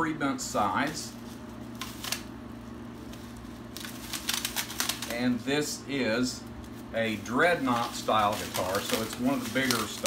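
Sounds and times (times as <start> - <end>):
plastic wrapping crinkling: 0.6 - 5.6, 6.4 - 10.0.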